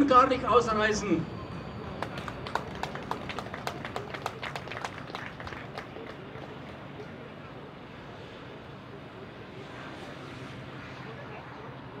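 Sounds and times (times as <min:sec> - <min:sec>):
audience hand clapping: 0:02.0 - 0:06.5.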